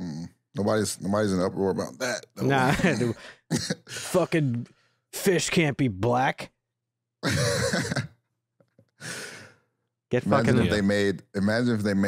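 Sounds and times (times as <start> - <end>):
laughter: 2.6 - 3.9, 7.2 - 8.2.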